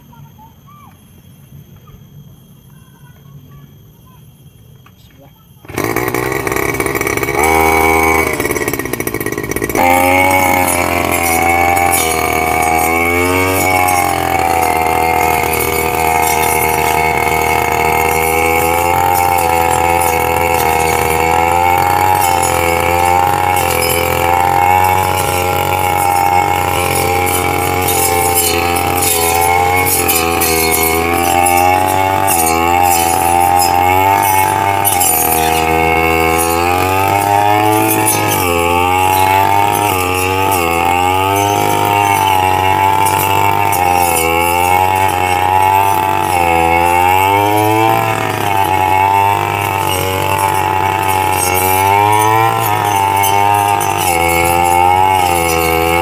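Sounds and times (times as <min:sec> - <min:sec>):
blade cutting weeds and grass: 0:05.6 - 0:56.0
brush cutter engine revving: 0:05.6 - 0:56.0.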